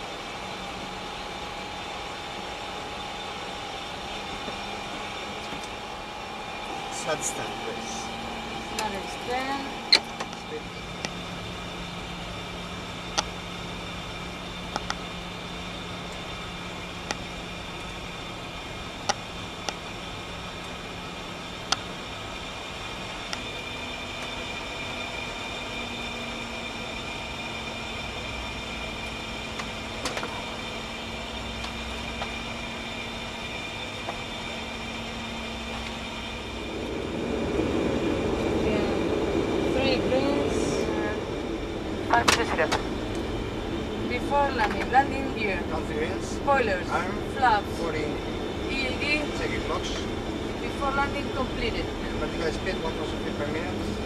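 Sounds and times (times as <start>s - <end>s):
low engine hum: 0.0s - 54.0s
rushing air: 35.2s - 42.1s.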